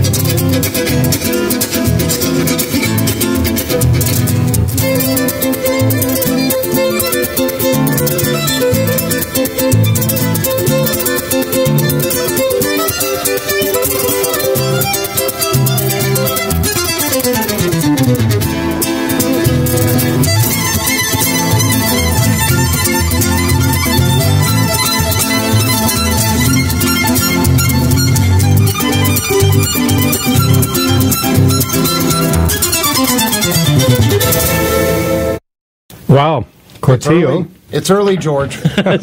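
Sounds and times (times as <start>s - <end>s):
flamenco guitar chords: 0.0s - 35.4s
violin melody: 0.0s - 35.4s.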